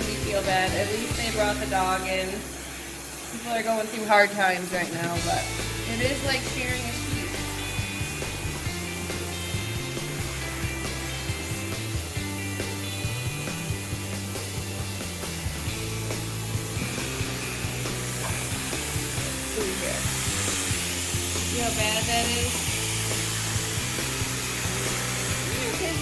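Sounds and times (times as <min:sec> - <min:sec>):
electric clippers buzzing: 0:00.0 - 0:26.0
background music with bass line: 0:05.2 - 0:26.0.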